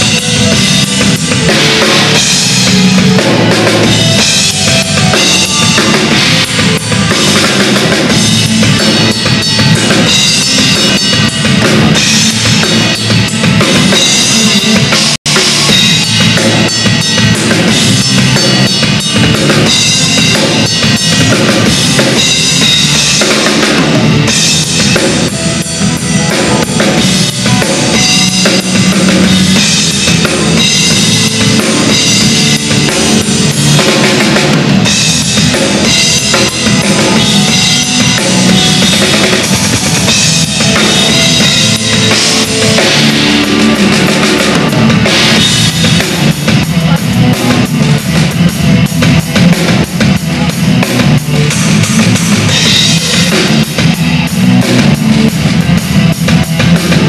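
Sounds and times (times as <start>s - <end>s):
fast drum kit playing: 0.0s - 57.0s.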